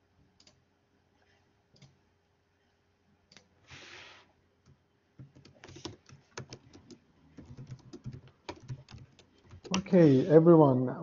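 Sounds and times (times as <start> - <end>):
faint computer clicks: 4.6 - 9.9.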